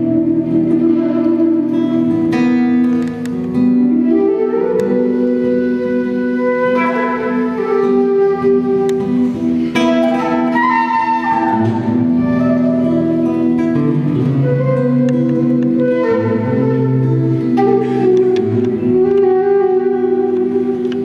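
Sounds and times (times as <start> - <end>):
flute melody: 0.0 - 21.0
plucked acoustic guitar: 0.0 - 21.0.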